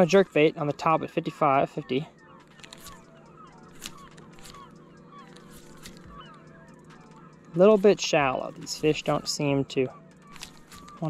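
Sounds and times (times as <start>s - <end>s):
steady low hum: 0.0s - 11.0s
faint bird calls: 2.1s - 11.0s.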